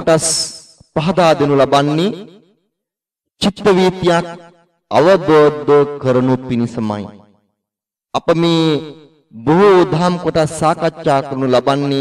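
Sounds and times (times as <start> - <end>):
man speaking: 0.0 - 2.3, 3.4 - 7.2, 8.1 - 12.0.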